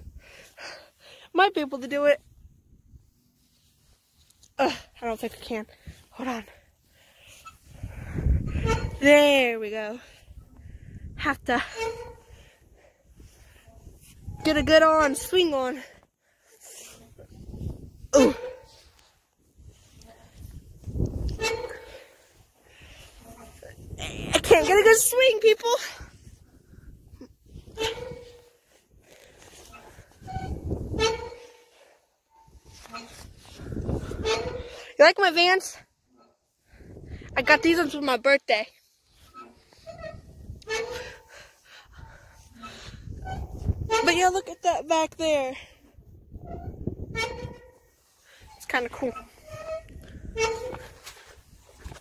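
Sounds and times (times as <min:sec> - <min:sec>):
swing creaking: 0:00.0 - 0:52.0
swing squeak: 0:07.2 - 0:10.5, 0:11.3 - 0:12.7, 0:13.4 - 0:15.8, 0:16.6 - 0:35.0, 0:36.2 - 0:38.1, 0:38.8 - 0:44.7, 0:46.3 - 0:52.0
microphone handling rumble: 0:07.5 - 0:09.5, 0:17.0 - 0:25.2, 0:25.9 - 0:31.5, 0:32.4 - 0:34.8, 0:36.7 - 0:37.9, 0:39.4 - 0:45.3, 0:46.0 - 0:47.9
woman straining with effort: 0:18.0 - 0:18.7.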